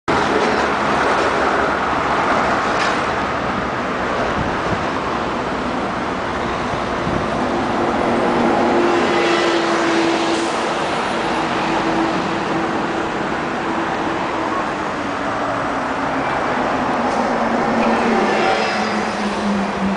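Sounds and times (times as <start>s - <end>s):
road traffic noise: 0.1s - 19.9s.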